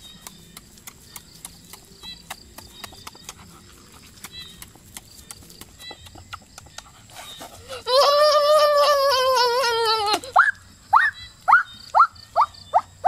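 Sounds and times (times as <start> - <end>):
crunching and chewing: 0.0 - 7.9.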